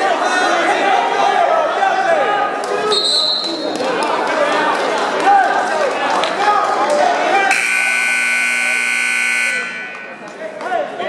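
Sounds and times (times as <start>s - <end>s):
scoreboard buzzer: 7.5s - 10.2s.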